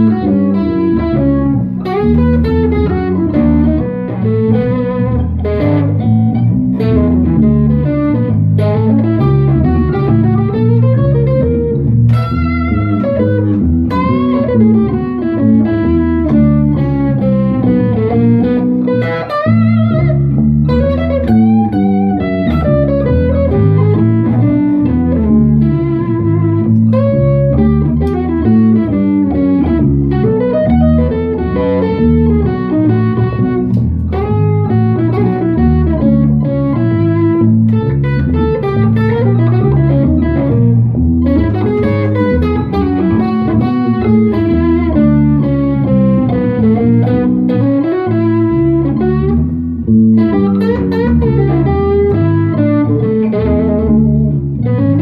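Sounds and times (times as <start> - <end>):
bass guitar line: 0.0 - 55.0
electric guitar playing blues: 0.0 - 55.0.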